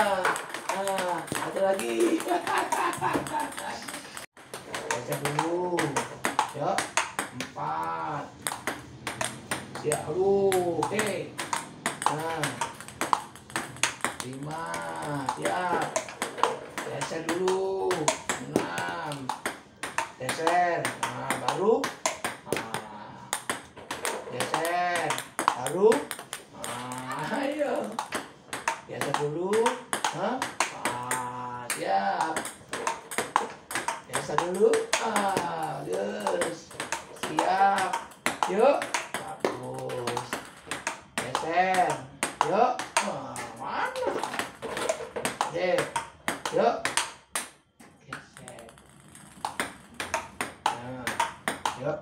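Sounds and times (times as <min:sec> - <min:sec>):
table tennis ball pinging: 0:00.0 - 0:52.0
table tennis ball clicks: 0:48.4 - 0:51.8.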